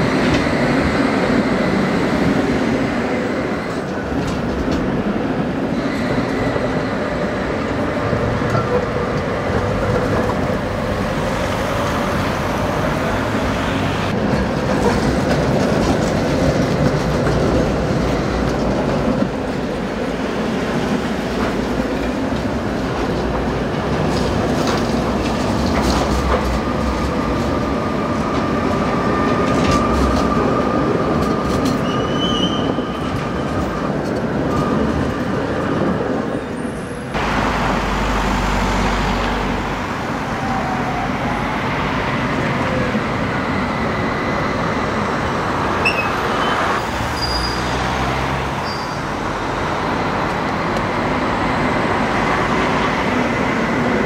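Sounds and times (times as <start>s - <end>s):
tram wheels rumbling on rails: 0.0s - 54.0s.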